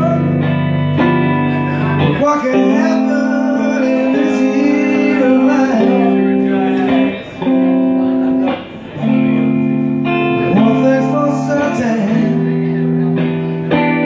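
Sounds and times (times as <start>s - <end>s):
electric guitar chords ringing: 0.0s - 14.0s.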